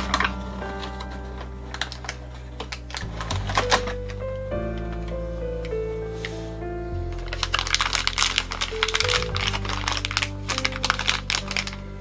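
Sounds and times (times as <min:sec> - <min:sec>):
plastic wrapper crinkling: 0:00.0 - 0:05.3, 0:07.1 - 0:12.0
background music: 0:00.0 - 0:12.0.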